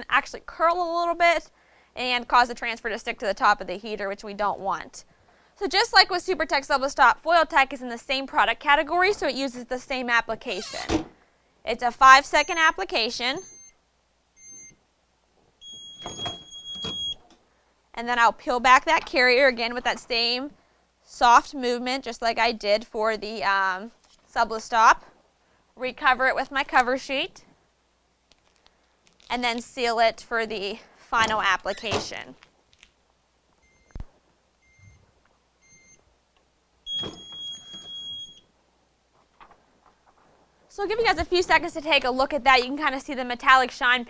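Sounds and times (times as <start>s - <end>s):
timer beeps: 13.4s - 13.7s, 14.4s - 14.8s, 15.6s - 17.2s, 36.9s - 38.4s
long steady beep: 13.4s - 13.8s, 14.4s - 14.8s, 15.6s - 17.2s, 35.6s - 36.0s, 36.9s - 38.4s.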